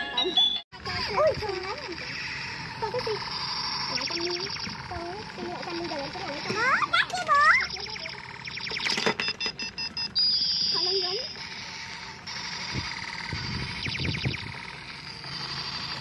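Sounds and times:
electronic beeps and chirps: 0:00.0 - 0:00.6, 0:03.2 - 0:14.8
fast electronic ticking: 0:00.4 - 0:16.0.

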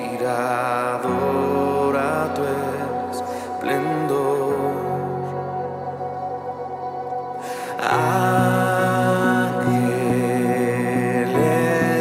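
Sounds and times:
man singing a long note: 0:00.0 - 0:06.4, 0:07.4 - 0:12.0
sustained keyboard chords: 0:00.0 - 0:12.0.

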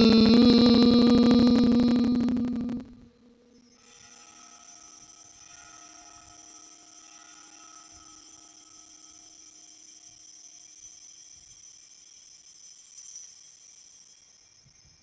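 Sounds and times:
altar bells ringing: 0:03.8 - 0:11.7.

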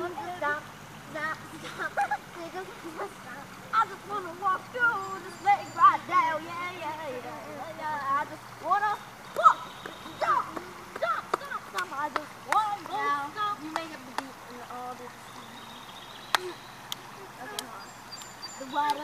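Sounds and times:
girl singing wordless tune: 0:00.0 - 0:15.7, 0:18.6 - 0:19.0
river flowing: 0:00.0 - 0:19.0
water splashes: 0:00.0 - 0:19.0.

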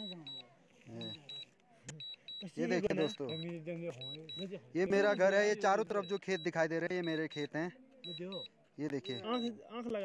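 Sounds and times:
remote controller double beeps: 0:00.0 - 0:00.4, 0:01.0 - 0:04.4, 0:05.9 - 0:09.5
man talking: 0:02.4 - 0:10.0.

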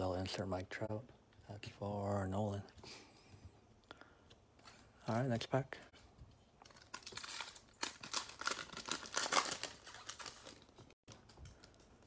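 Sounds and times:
wrapper tearing and crinkling: 0:06.6 - 0:11.2.

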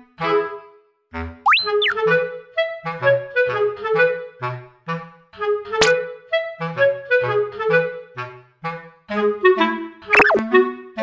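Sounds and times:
cartoon sliding whistle effect: 0:01.5 - 0:02.0, 0:10.1 - 0:10.4
playful clarinet music: 0:01.5 - 0:04.7, 0:05.4 - 0:11.0.

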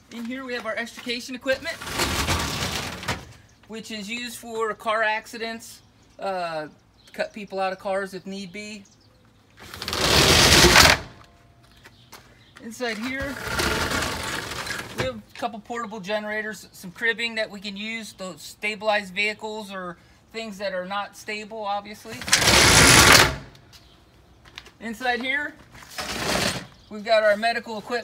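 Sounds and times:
roll-up door slats rattling: 0:01.6 - 0:03.3, 0:09.6 - 0:11.2, 0:13.3 - 0:15.0, 0:22.2 - 0:23.5.

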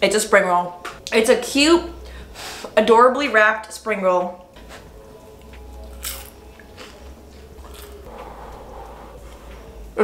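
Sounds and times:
person chewing crispy food: 0:05.2 - 0:08.2
airy huffing breaths: 0:08.0 - 0:09.9.

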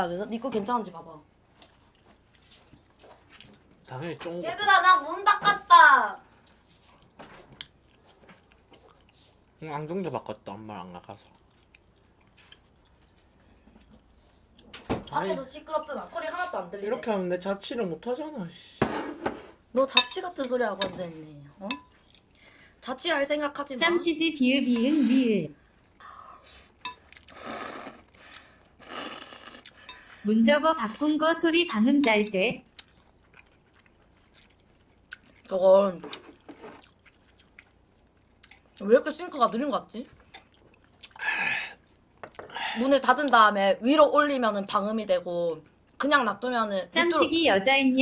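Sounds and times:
chewing: 0:01.5 - 0:04.3, 0:06.2 - 0:14.7, 0:21.7 - 0:22.6, 0:25.5 - 0:30.2, 0:32.6 - 0:39.1, 0:40.0 - 0:43.4
woman speaking: 0:19.8 - 0:21.8, 0:22.8 - 0:25.6, 0:30.2 - 0:32.6, 0:42.7 - 0:48.0.

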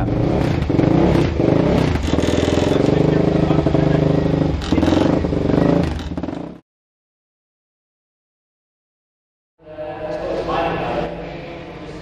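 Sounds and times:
motorcycle engine revving: 0:00.0 - 0:06.6.

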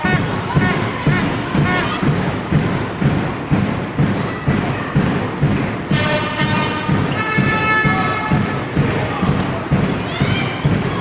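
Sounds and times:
drumbeat of low thumps: 0:00.0 - 0:11.0.

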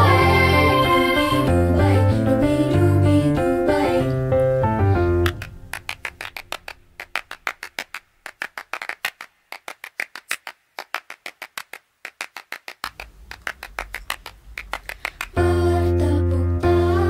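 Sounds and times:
children clapping rhythmically: 0:05.2 - 0:15.4.

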